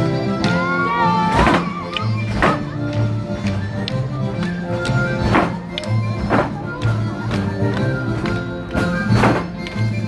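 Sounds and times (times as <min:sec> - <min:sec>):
folk dance melody over drone: 0:00.0 - 0:10.0.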